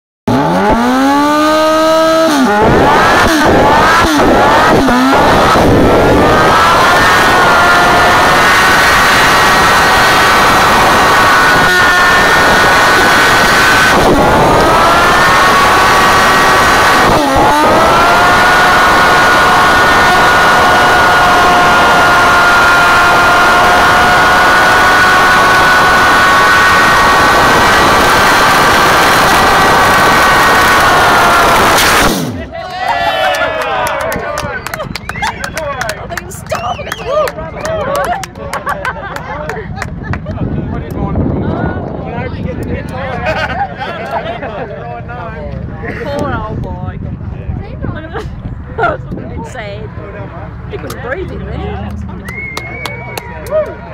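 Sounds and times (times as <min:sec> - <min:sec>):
motorcycle engine revving: 0:00.3 - 0:32.4
rear tyre spinning in burnout: 0:00.3 - 0:32.5.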